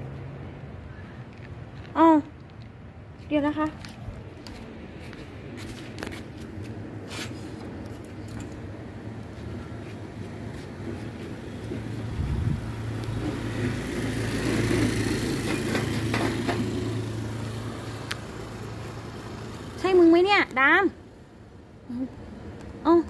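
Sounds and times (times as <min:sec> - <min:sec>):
vehicle passing by: 0:09.0 - 0:20.9.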